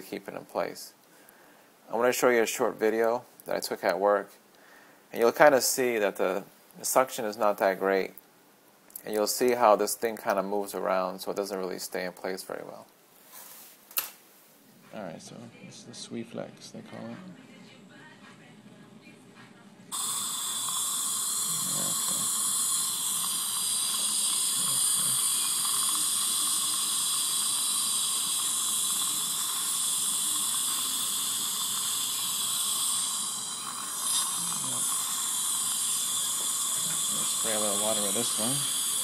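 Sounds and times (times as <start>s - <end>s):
saliva ejector suction hiss: 19.9s - 39.0s.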